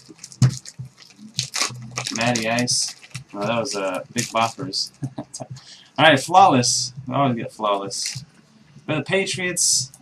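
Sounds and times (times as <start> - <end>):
plastic wrapper crinkling: 0.0 - 5.1, 7.9 - 8.4.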